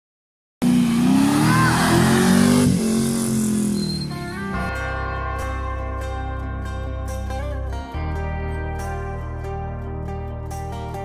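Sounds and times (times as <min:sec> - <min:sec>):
vehicle engine revving: 0:00.6 - 0:04.8.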